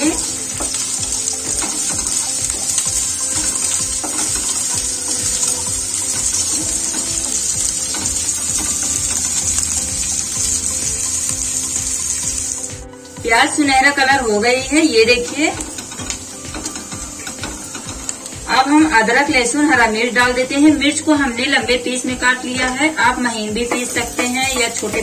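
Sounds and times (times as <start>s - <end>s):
wooden spatula stirring: 0.0s - 12.6s
onions sizzling in hot oil: 0.0s - 25.0s.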